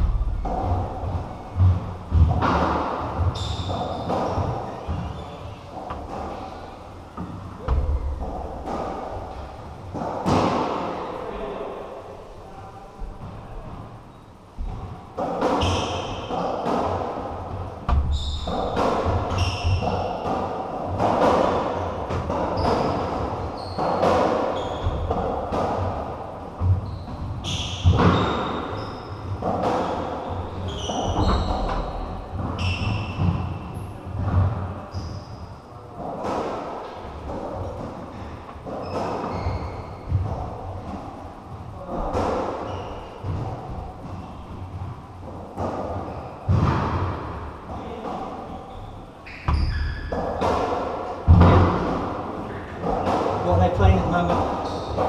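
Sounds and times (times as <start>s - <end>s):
ball hitting rackets and walls: 0.0s - 11.0s, 14.6s - 55.0s
trainers squeaking on floorboards: 3.2s - 6.8s, 15.5s - 16.6s, 17.9s - 20.2s, 22.3s - 25.4s, 26.6s - 35.7s, 38.1s - 40.4s, 41.8s - 44.4s, 47.8s - 50.4s.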